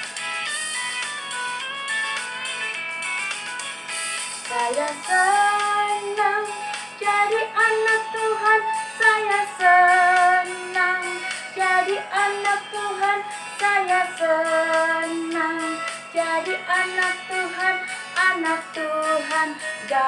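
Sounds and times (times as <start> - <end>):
backing track with steady beat: 0.0 - 20.0
woman singing: 4.5 - 20.0.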